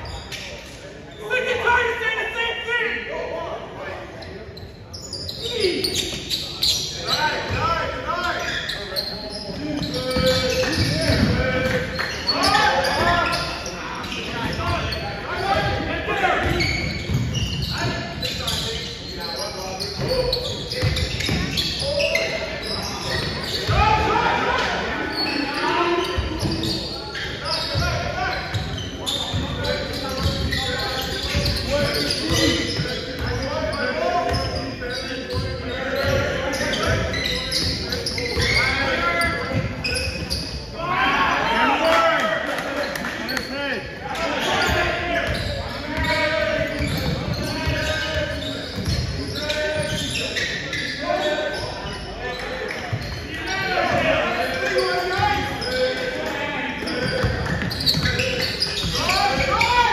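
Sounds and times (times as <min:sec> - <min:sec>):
indistinct shouting and chatter: 0:00.0 - 0:59.9
ball bouncing on wooden court: 0:09.6 - 0:11.8.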